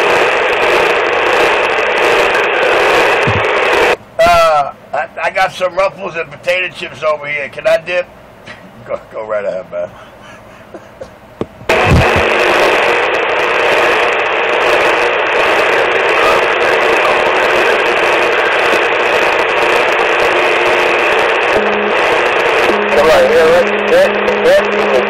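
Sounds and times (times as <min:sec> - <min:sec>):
radio static: 0:00.0 - 0:04.5, 0:11.7 - 0:25.0
low hum tone: 0:21.5 - 0:25.0.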